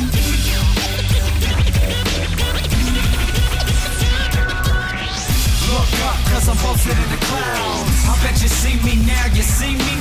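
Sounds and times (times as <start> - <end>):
hip hop music with steady beat: 0.0 - 10.0
turntable scratching: 0.0 - 10.0.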